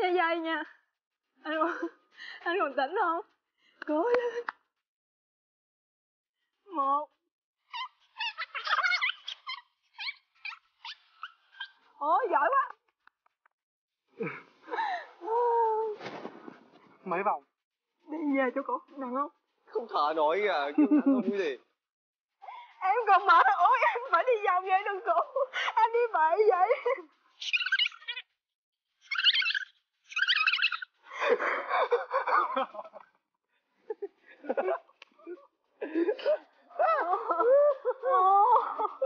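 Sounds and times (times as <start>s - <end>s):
high-pitched warbling chirps: 27.4s - 28.2s, 29.1s - 30.9s.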